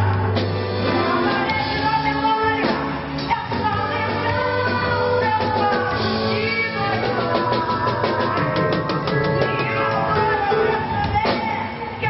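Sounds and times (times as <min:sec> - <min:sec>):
pop-rock band with drums: 0:00.0 - 0:12.0
woman singing into microphone: 0:00.0 - 0:12.0.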